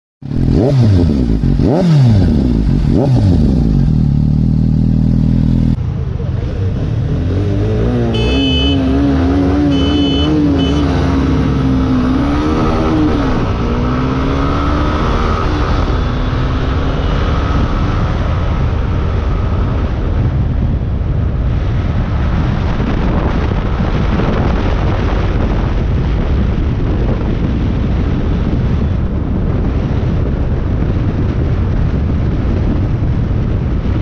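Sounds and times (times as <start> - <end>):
motorcycle engine accelerating: 0.2 - 34.0
short high beeps: 8.2 - 11.2
wind rushing over microphone: 10.4 - 34.0.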